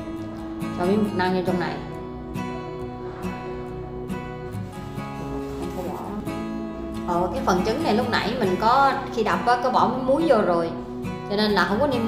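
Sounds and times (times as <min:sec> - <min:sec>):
acoustic guitar strumming: 0:00.0 - 0:09.4.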